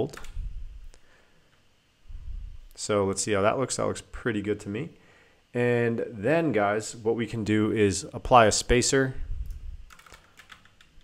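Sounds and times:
keyboard keys clicking: 0:09.9 - 0:11.0.

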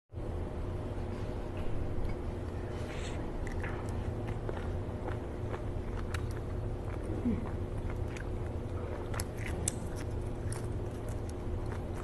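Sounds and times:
low hum: 0:00.1 - 0:12.0
wet chewing clicks: 0:03.4 - 0:12.0.

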